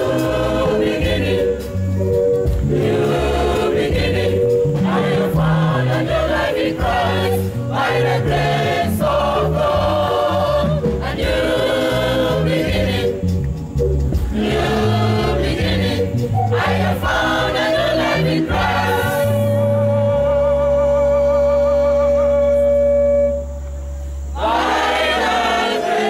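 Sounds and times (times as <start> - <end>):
gospel choir singing: 0.0 - 23.4, 24.3 - 26.0
instrumental backing: 0.0 - 25.4.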